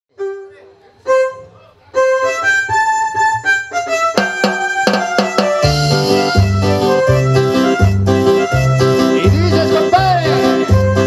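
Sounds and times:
electronic keyboard melody: 0.1 - 11.0
sharp drum hits: 4.2 - 6.5.

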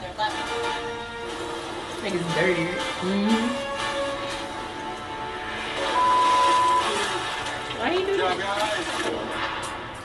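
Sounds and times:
quiet background music: 0.0 - 10.0
electronic beep: 5.9 - 7.0.

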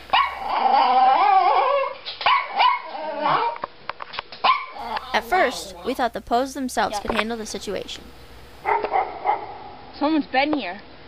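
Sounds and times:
small dog barking: 0.1 - 0.7, 1.8 - 3.6, 4.4 - 5.8, 8.6 - 9.7.

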